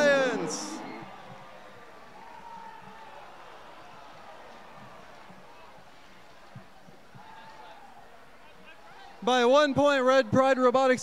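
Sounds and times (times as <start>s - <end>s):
distant voices: 0.0s - 1.4s.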